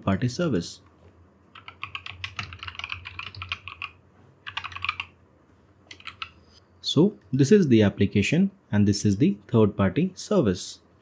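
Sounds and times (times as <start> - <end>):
typing on computer keyboard: 1.5 - 5.1, 5.9 - 6.3.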